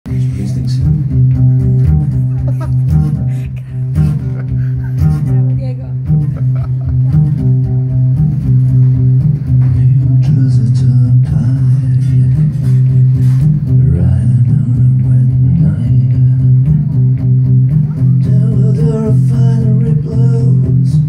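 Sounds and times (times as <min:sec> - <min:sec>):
acoustic guitar strumming: 0:00.1 - 0:21.0.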